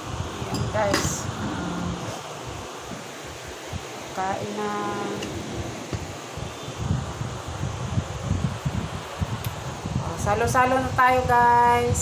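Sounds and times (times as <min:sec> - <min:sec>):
room noise hiss: 0:00.0 - 0:12.0
faint low rumbles: 0:00.4 - 0:02.4.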